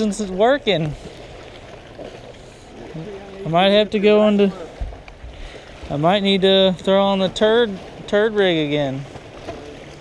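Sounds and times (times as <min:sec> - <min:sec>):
light wind: 0:00.0 - 0:10.0
water around a boat: 0:00.0 - 0:10.0.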